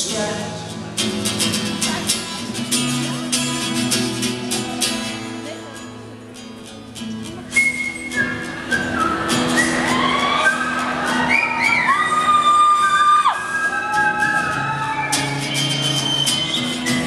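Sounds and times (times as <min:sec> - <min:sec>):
strummed acoustic guitar: 0:00.0 - 0:17.0
person whistling a melody: 0:07.5 - 0:17.0.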